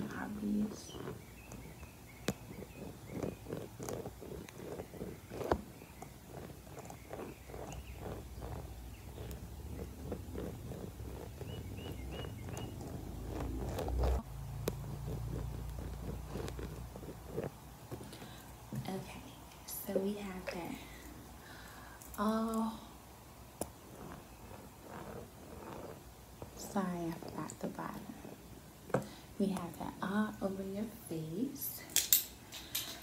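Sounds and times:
fingertips rubbing near microphone: 0.0s - 19.1s, 23.5s - 29.0s
dull handling rumble: 0.0s - 30.5s.

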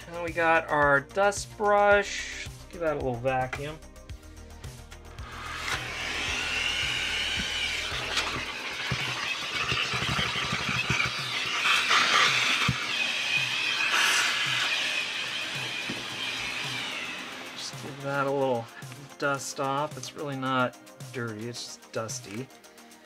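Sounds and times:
vacuum cleaner suction hiss: 5.2s - 19.1s
brush on plastic housing: 7.4s - 14.9s.

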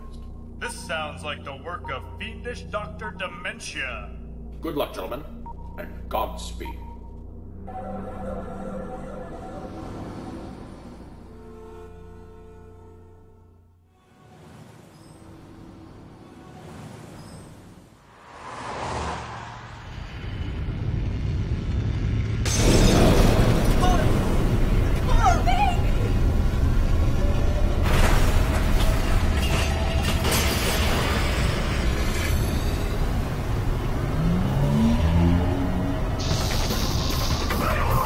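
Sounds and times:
low rising musical notes: 0.1s - 17.4s, 18.1s - 30.0s, 31.2s - 36.2s
whoosh: 16.6s - 23.7s
explosion: 18.2s - 25.1s
deep rumble: 18.4s - 30.2s.

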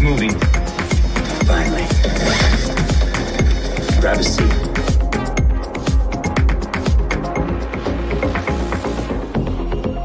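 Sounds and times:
fast kick drum beat: 0.0s - 7.1s
electronic dance music: 0.0s - 9.1s.

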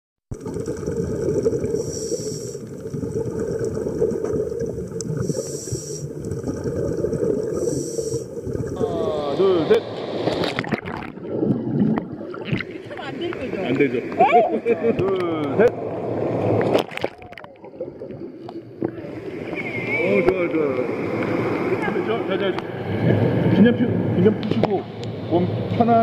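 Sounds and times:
underwater bubbling and rumbling: 0.3s - 24.5s
water splashes: 0.3s - 24.8s
short hiss: 5.2s - 6.1s.

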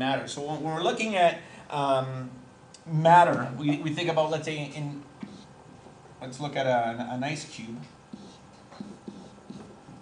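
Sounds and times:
stylus tapping on pen tablet: 8.1s - 10.0s.

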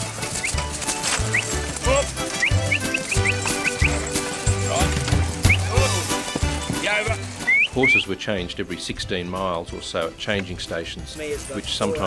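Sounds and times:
music with pulsing bass: 0.0s - 8.0s
short rising high chirps: 2.3s - 4.2s.

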